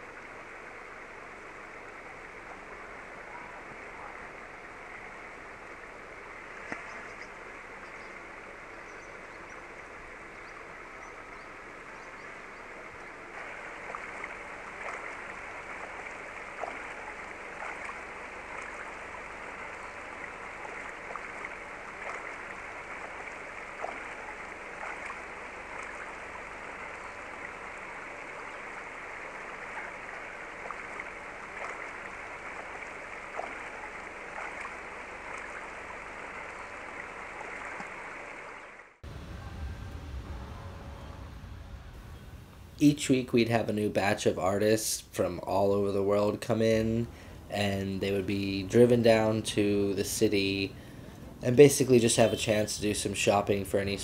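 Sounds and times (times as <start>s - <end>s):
steady rushing ambience: 39.0s - 43.6s.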